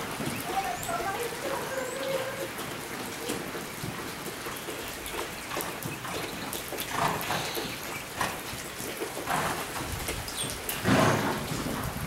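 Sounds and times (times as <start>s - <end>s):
rain on a metal roof: 0.0s - 12.0s.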